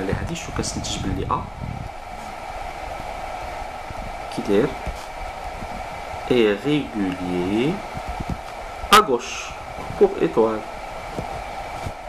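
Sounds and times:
background hiss and hum: 0.0 - 12.0.

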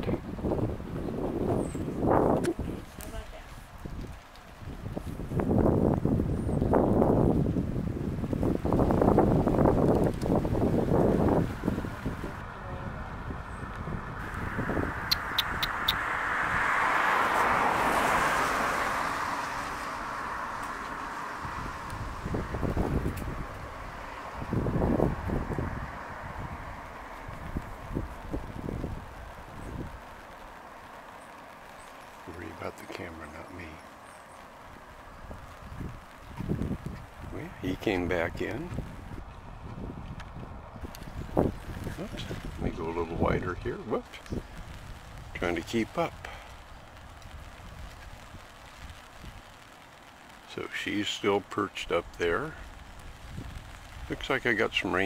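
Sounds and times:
wind gusting against microphone: 0.0 - 55.0
vehicle passing: 10.8 - 46.7.

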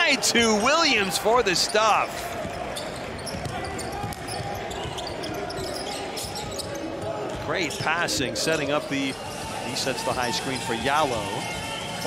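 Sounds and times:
murmur of spectators' voices: 0.0 - 12.0.

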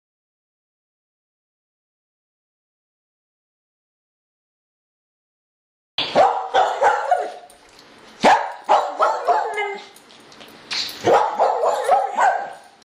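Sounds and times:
dog barking: 6.0 - 7.5, 8.2 - 9.9, 11.0 - 12.8.

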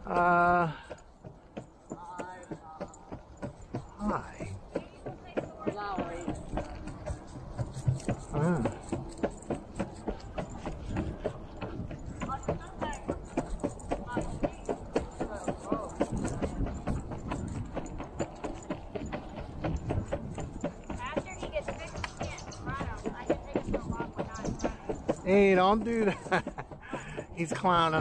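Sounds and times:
clacking on concrete sidewalk: 0.0 - 28.0.

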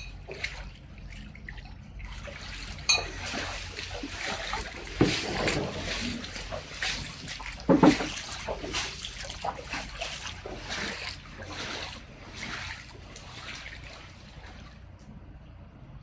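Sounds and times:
footsteps sloshing through water: 0.0 - 15.3.

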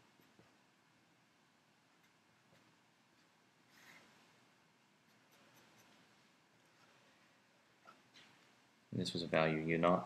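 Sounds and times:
marker scratching on paper: 5.0 - 7.0.

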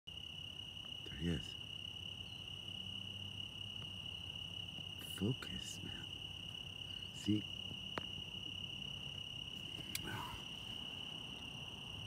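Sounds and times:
crickets chirping: 0.1 - 12.0
faint low hum: 0.1 - 12.0.

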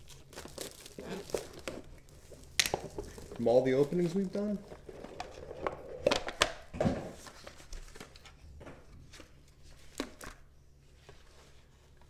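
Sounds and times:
card packaging crinkling: 0.0 - 6.6.

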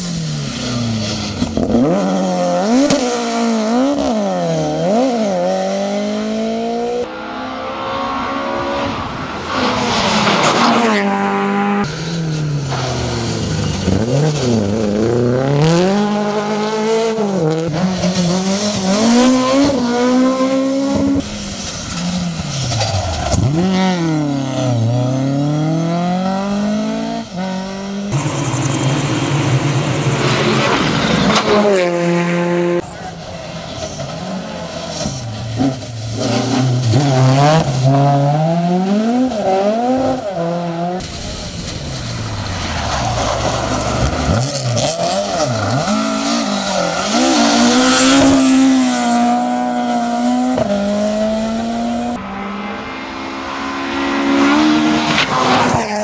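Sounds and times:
rally car engines revving: 0.0 - 56.0.

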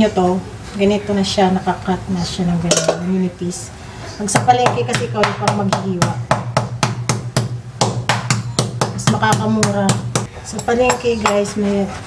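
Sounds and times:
meat mallet pounding beef: 4.4 - 10.3.

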